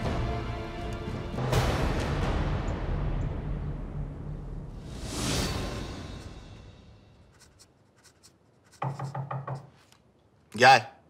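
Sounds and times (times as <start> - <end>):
pen scratching on paper: 7.3 - 9.2
knocks on a wooden door: 8.8 - 9.8.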